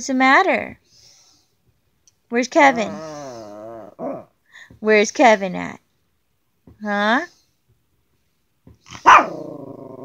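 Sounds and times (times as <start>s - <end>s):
dog barking and growling howl: 9.0s - 10.0s.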